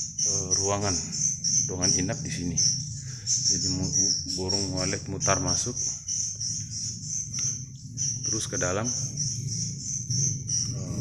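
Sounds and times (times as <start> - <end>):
crickets trilling: 0.0 - 11.0
low steady hum: 0.0 - 11.0.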